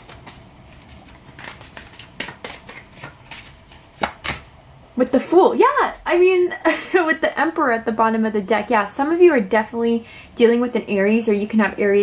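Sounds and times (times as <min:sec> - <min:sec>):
cards shuffling: 0:00.0 - 0:04.4
card snapping down: 0:01.4 - 0:04.4.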